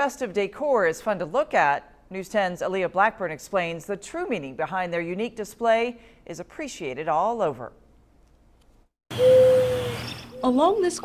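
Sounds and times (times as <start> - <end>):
steady held tone: 9.1 - 10.8.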